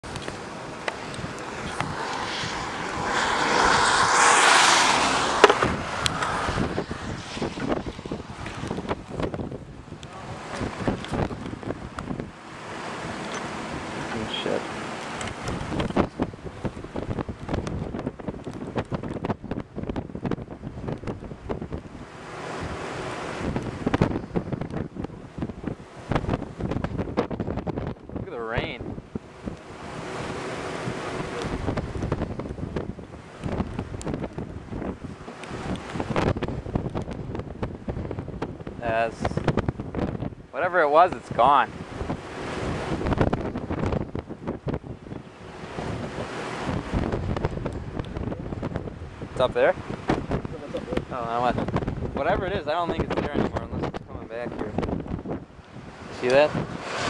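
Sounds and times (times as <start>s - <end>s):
wind blowing on microphone: 0.0s - 57.0s.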